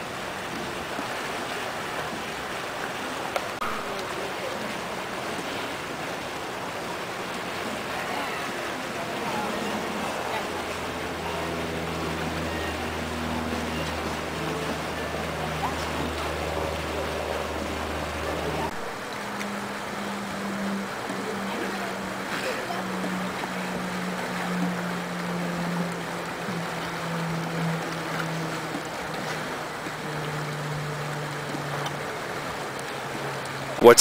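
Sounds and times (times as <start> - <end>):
rush of moving water: 0.0 - 34.0
low steady hum: 2.6 - 34.0.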